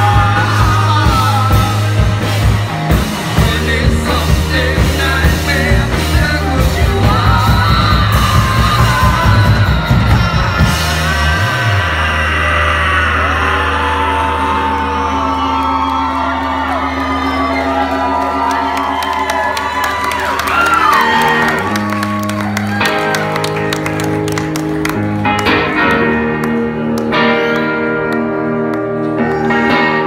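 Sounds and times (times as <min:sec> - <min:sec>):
rock band playing loudly: 0:00.0 - 0:30.0
audience whooping and yelling: 0:06.4 - 0:30.0.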